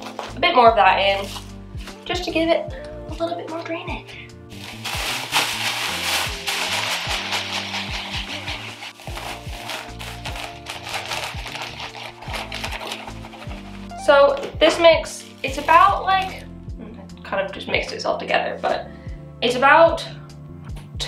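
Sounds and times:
music with steady beat: 0.0s - 18.0s
grit pouring into plastic tub: 4.5s - 13.7s.

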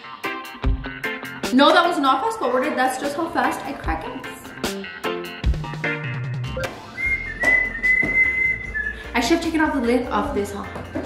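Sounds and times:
faint background music: 1.3s - 4.9s, 6.5s - 11.0s
high whistled tone: 6.5s - 9.1s.

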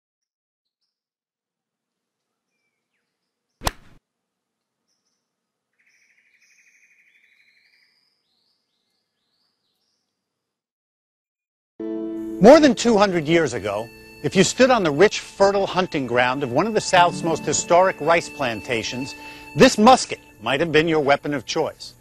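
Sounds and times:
sharp golf club crack: 3.6s - 4.0s
bird chirps: 4.9s - 10.1s.

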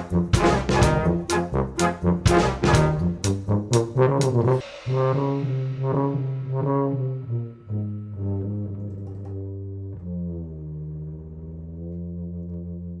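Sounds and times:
brass band playing: 0.0s - 9.8s.

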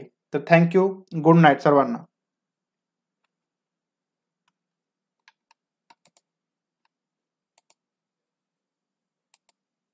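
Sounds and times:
computer input clicks: 7.6s - 7.8s.

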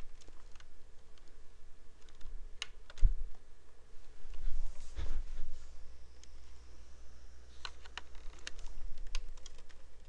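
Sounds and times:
low steady hum: 0.0s - 10.0s
computer keyboard typing: 7.6s - 10.0s.

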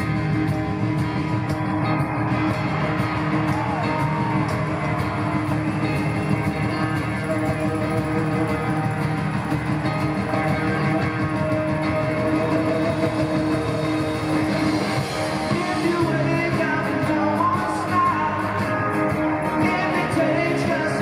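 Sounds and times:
drums: 0.0s - 21.0s
electric guitars: 0.0s - 21.0s
keyboard: 0.0s - 21.0s.

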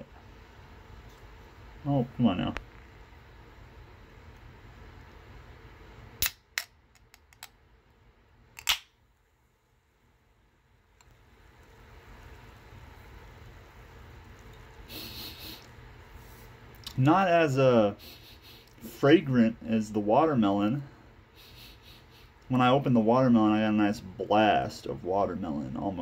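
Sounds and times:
can snapping open: 6.2s - 7.5s, 8.6s - 8.9s.

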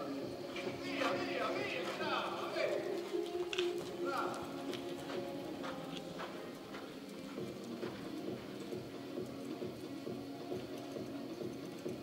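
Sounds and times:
horse hoofbeats on dirt: 0.0s - 12.0s.

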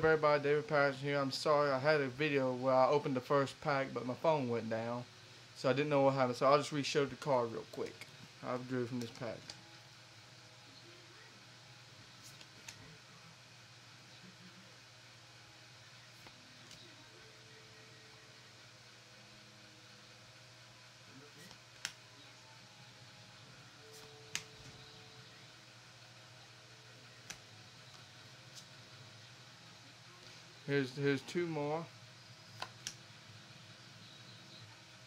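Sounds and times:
steady low hum: 0.0s - 35.0s
trading cards flipping clicks: 12.2s - 12.9s, 21.4s - 22.0s, 24.0s - 24.8s, 27.2s - 28.7s, 32.5s - 33.0s.

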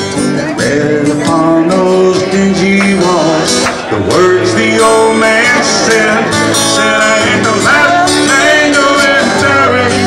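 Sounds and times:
guitars strummed: 0.0s - 10.0s
man singing: 0.0s - 10.0s.

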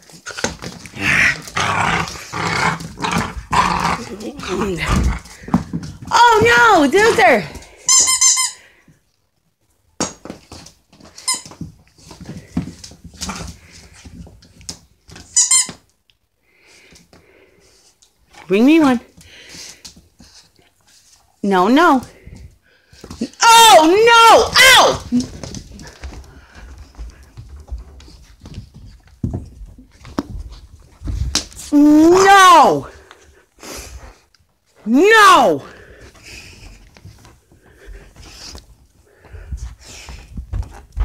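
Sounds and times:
dog playing roughly: 0.0s - 8.5s, 10.2s - 15.8s, 22.0s - 32.3s, 35.6s - 41.0s
squeaky dog toy squeaking: 7.8s - 8.6s, 15.2s - 15.8s.

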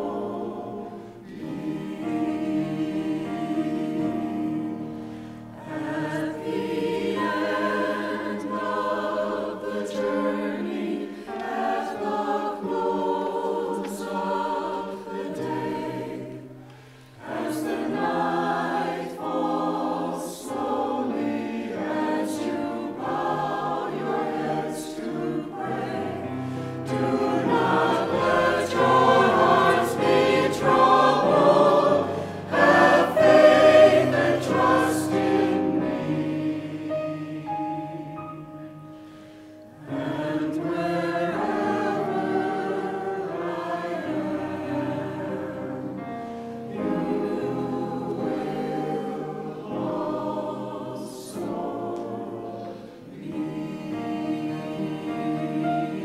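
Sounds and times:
mixed choir singing: 0.0s - 56.0s.

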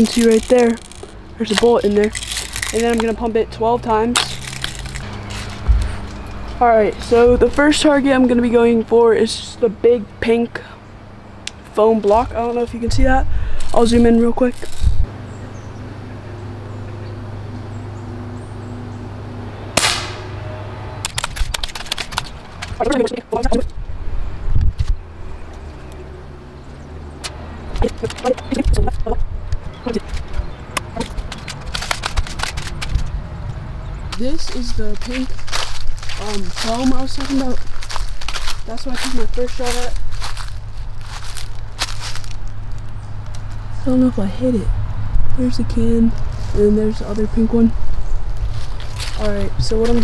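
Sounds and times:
footsteps crunching through dry leaves: 0.0s - 8.8s, 29.7s - 33.2s, 34.0s - 43.7s, 46.2s - 50.0s
steady low hum: 0.0s - 50.0s
low rumble: 4.2s - 8.0s
air rifle shot: 19.8s - 20.4s.

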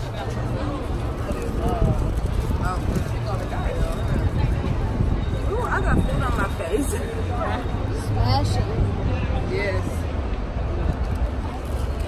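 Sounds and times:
group of voices talking: 0.0s - 12.0s
outdoor street noise rumble: 0.0s - 12.0s.

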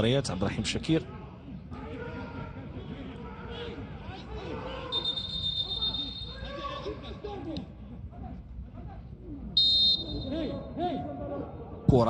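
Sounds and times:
stadium crowd noise: 0.0s - 12.0s
referee whistle blast: 4.9s - 6.5s, 9.6s - 10.5s.

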